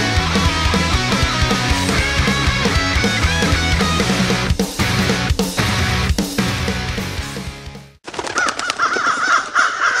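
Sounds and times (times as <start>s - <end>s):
crows cawing: 8.3s - 10.0s.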